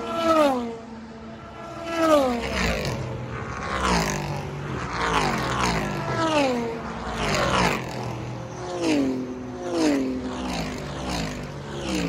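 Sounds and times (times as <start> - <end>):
race car engines passing: 0.0 - 12.0.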